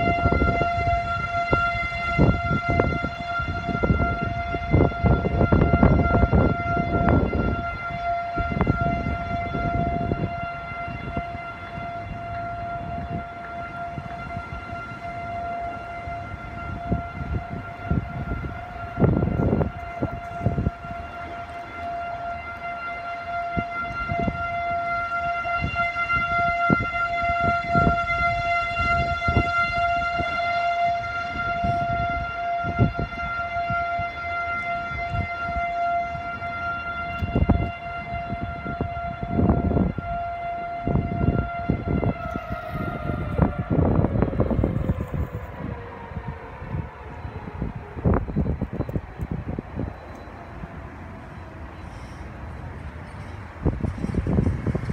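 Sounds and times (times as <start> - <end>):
warning siren steady tone: 0.0 - 54.9.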